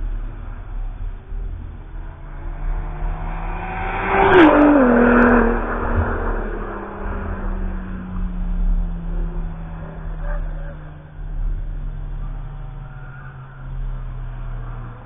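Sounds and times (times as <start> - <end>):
race car passing by: 0.0 - 15.0.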